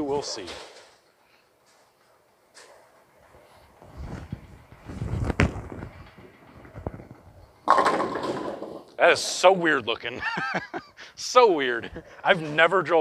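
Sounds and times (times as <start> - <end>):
bowling ball rolling on wooden lane: 3.0 - 9.0
bowling pins crashing: 4.4 - 8.9.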